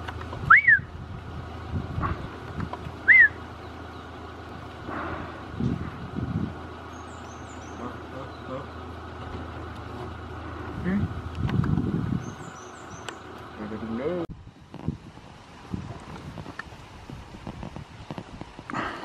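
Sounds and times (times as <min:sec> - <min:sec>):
steady low hum: 0:00.0 - 0:19.0
loud rising and falling whistles: 0:00.5 - 0:00.9, 0:03.0 - 0:03.4.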